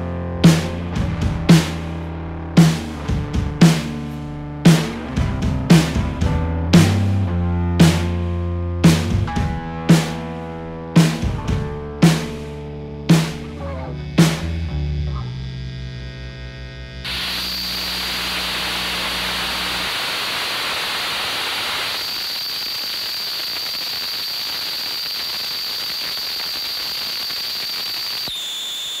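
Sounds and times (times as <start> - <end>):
low hum: 11.8 - 22.0
static hiss with high whine: 17.1 - 29.0.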